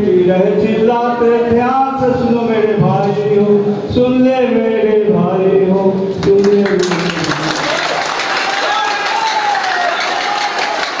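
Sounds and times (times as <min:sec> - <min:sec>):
man speaking over microphone: 0:00.0 - 0:07.5
audience applauding: 0:06.2 - 0:11.0.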